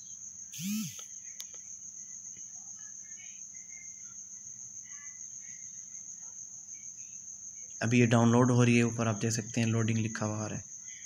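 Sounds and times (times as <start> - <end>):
high-pitched whine: 0.6 - 1.0.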